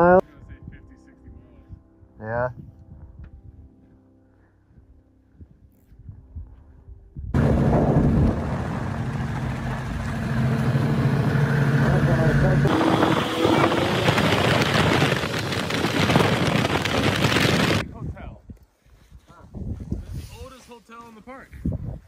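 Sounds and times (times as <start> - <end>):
wind rushing over microphone: 5.4 - 18.6, 19.4 - 20.5, 21.5 - 22.0
snowmobile engine running: 7.4 - 17.8.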